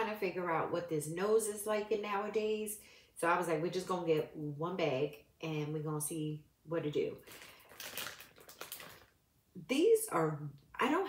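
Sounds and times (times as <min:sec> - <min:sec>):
plastic bag crinkling: 0:07.2 - 0:09.2.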